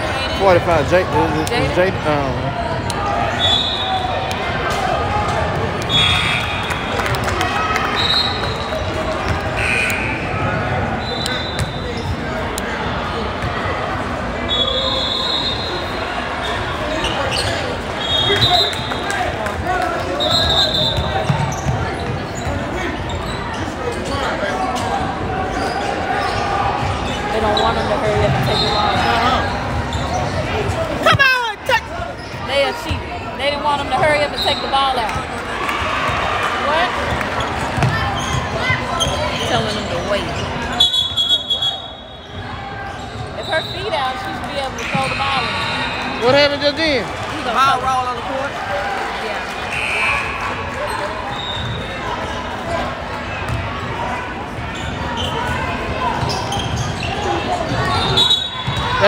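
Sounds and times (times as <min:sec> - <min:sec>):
spectator chatter: 0:00.0 - 0:59.0
sneakers squeaking on hardwood: 0:20.3 - 0:24.2, 0:37.4 - 0:41.1, 0:54.7 - 0:59.0
basketball bouncing: 0:37.1 - 0:38.5.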